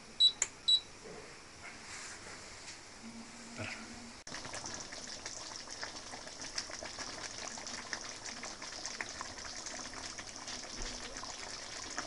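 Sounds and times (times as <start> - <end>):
potatoes boiling in broth: 4.3 - 12.0.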